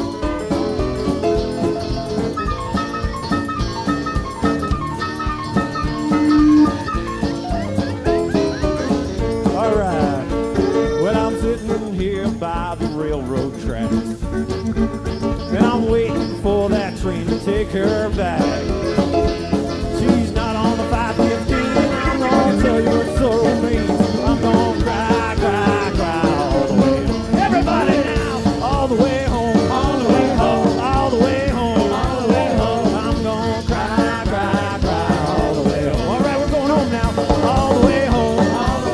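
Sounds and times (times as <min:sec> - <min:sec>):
band playing instrumental: 0:00.0 - 0:38.9
sliding lead melody: 0:00.0 - 0:38.9
steady drum beat: 0:00.0 - 0:38.9
lead line with sliding notes: 0:01.2 - 0:11.4.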